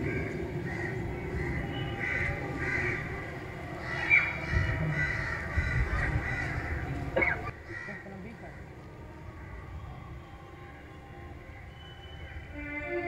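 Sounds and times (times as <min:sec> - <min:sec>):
birds calling: 0:00.0 - 0:13.0.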